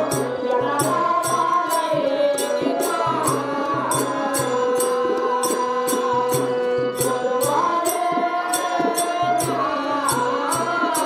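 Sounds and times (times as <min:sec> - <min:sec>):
harmonium sustained notes: 0:00.0 - 0:11.0.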